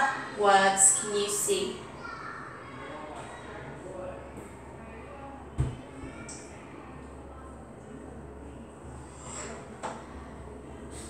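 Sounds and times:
faint soft speech: 0.0s - 11.0s
steady low hum: 0.0s - 11.0s.

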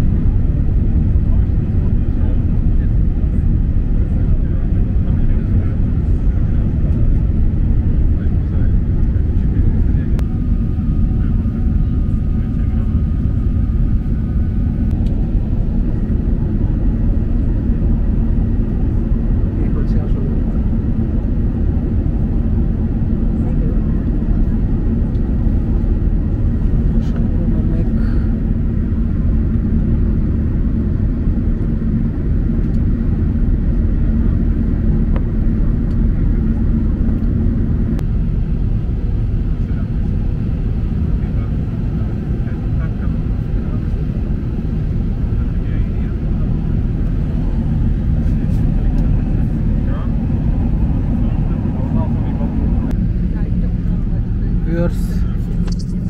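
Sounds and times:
jet engine roar in cabin: 0.0s - 56.0s
steady hum: 0.0s - 56.0s.

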